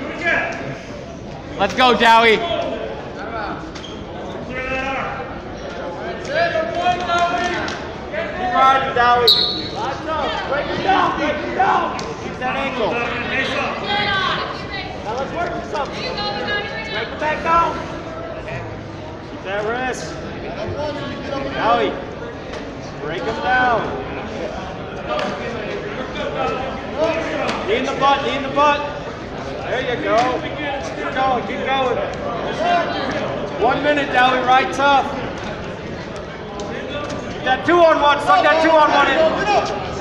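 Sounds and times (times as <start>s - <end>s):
gymnasium background noise: 0.0s - 40.0s.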